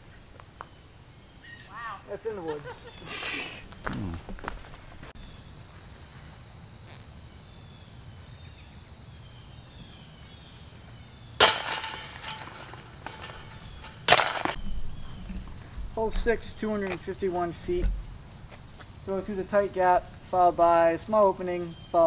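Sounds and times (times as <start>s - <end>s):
metal chains jingling: 11.4s - 14.6s.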